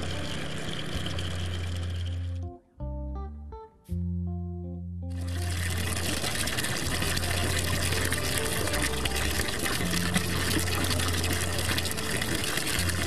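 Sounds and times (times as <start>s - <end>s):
low steady hum: 0.0s - 3.5s, 4.1s - 13.0s
water gushing from pipe: 5.1s - 13.0s.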